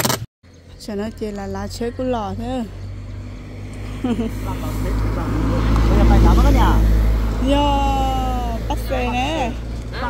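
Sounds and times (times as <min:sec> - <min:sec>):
road traffic approaching: 0:00.4 - 0:10.0.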